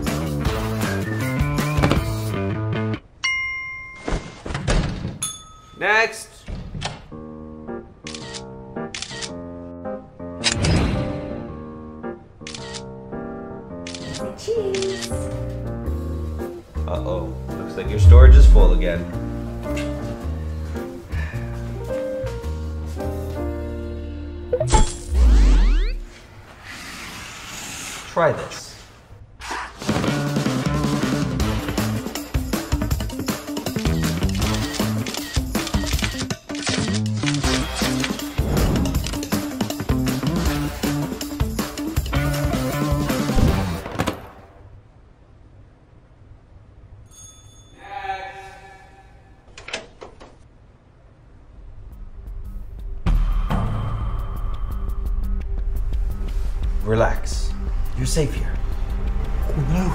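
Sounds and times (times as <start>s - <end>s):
deep boom: 18.0s - 19.2s
low rumble into loud hit: 18.0s - 19.2s
rising sweeps: 18.0s - 19.2s
soft airy whoosh: 18.0s - 19.2s.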